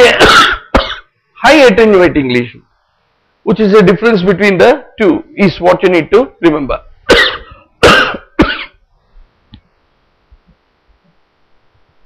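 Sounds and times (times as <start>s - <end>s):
man coughing: 0.0s - 1.1s, 7.1s - 8.8s.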